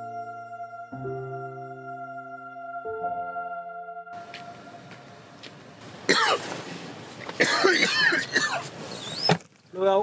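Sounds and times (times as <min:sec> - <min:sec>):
man coughing: 0:06.1 - 0:06.5, 0:07.4 - 0:08.7.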